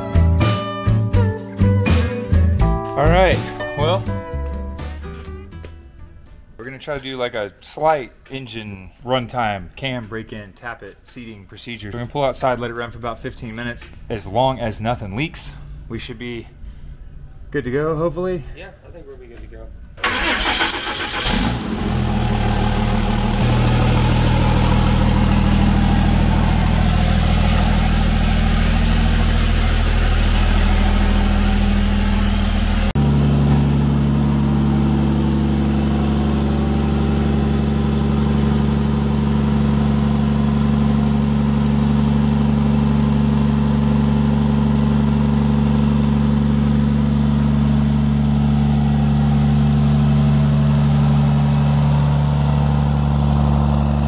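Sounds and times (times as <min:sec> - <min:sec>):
diesel engine idling: 0:20.0 - 0:54.0.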